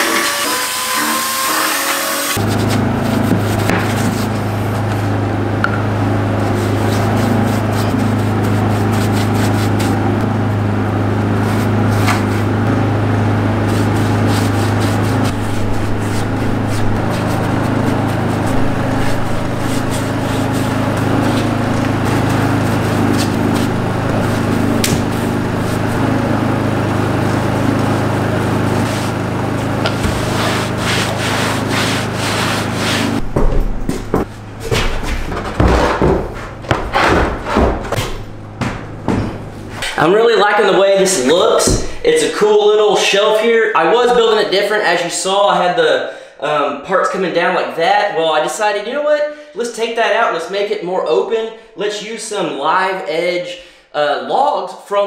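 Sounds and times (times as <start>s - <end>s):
small motor running: 0.0s - 4.8s, 13.6s - 34.0s
rough sanding noise: 6.4s - 10.0s, 13.6s - 33.3s
uneven knocks and thumps: 33.2s - 39.9s.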